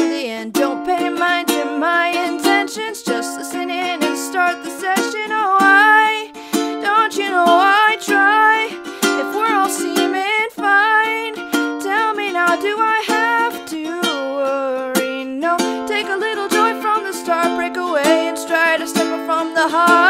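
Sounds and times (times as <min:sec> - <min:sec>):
strummed ukulele chords: 0:00.0 - 0:20.0
woman singing with vibrato: 0:00.0 - 0:20.0.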